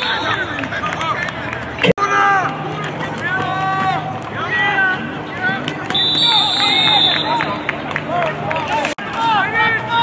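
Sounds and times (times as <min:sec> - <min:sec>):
crowd noise: 0:00.0 - 0:10.0
voices shouting: 0:02.0 - 0:10.0.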